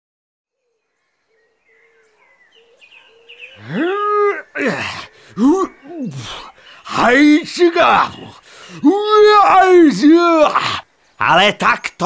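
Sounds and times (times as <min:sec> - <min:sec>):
faint birdsong chirps: 0:00.5 - 0:12.0.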